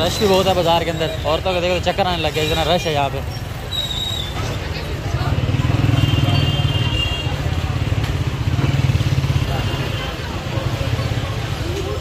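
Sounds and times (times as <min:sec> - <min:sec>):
crowd babble: 0:00.0 - 0:12.0.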